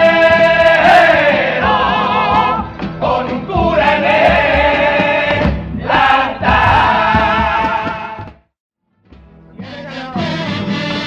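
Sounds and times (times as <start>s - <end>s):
male chorus singing in harmony: 0.0s - 8.4s, 9.6s - 11.0s
guitar accompaniment: 8.9s - 11.0s.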